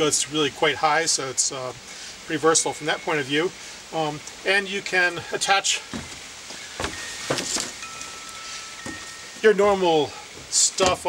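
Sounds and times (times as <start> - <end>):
metal wind chimes ringing: 2.3 - 11.0
footsteps on wooden deck: 5.8 - 9.3.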